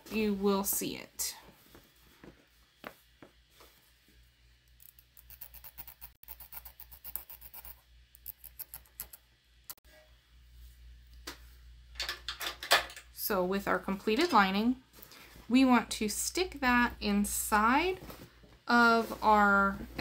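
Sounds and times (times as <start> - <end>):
marker pen scratching on fabric: 5.2 - 8.9.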